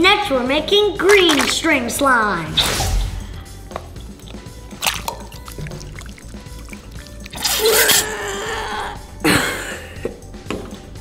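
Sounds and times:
background music: 0:00.0 - 0:11.0
liquid dripping: 0:01.1 - 0:01.6, 0:03.6 - 0:08.1
slime squeezed and pouring: 0:04.2 - 0:08.0.

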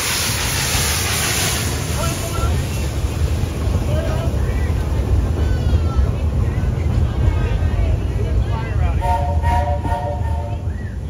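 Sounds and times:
steam locomotive rumbling: 0:00.0 - 0:11.0.

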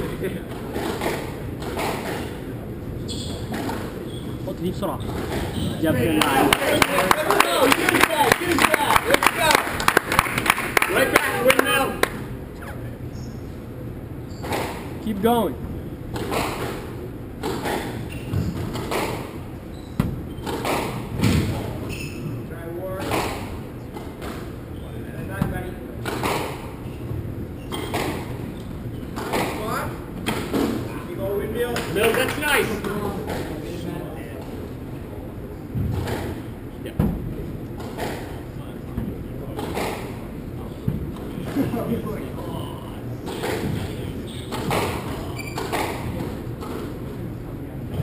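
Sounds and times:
ball hitting court walls: 0:00.0 - 0:02.5, 0:03.1 - 0:04.0, 0:05.0 - 0:08.5, 0:14.3 - 0:15.0, 0:15.6 - 0:22.4, 0:23.0 - 0:30.9, 0:35.7 - 0:40.2, 0:43.2 - 0:47.1
racquets striking squash ball: 0:00.0 - 0:04.4, 0:05.0 - 0:12.4, 0:14.2 - 0:34.8, 0:35.7 - 0:41.9, 0:43.2 - 0:48.0.

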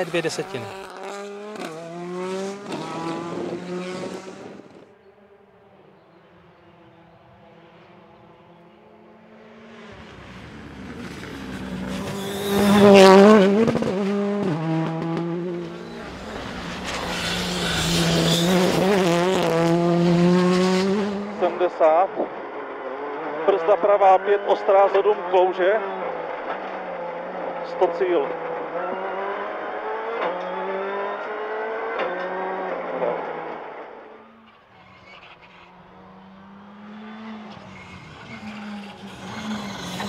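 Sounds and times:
rally car passing at speed: 0:00.0 - 0:40.0.

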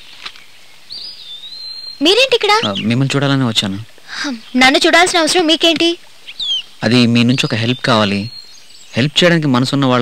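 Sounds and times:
bird chirping: 0:00.0 - 0:10.0
faint outdoor hiss: 0:00.0 - 0:10.0.

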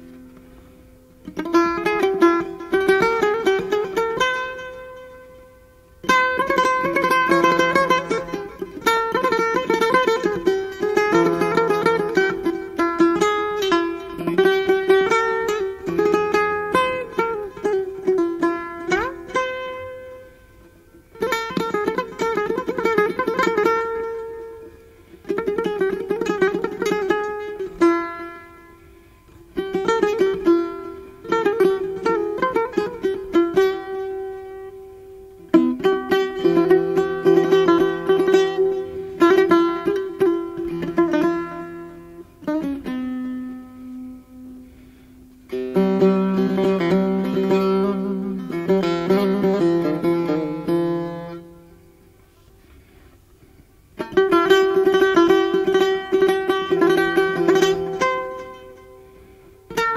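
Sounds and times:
plucked long-necked lute: 0:00.0 - 0:59.9.

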